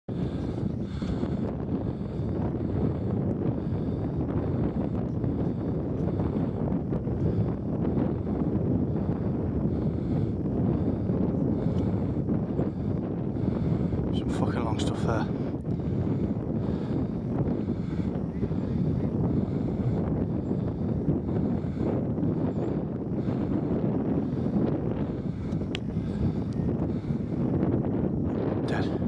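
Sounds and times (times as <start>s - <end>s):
wind blowing across microphone: 0.0s - 29.0s.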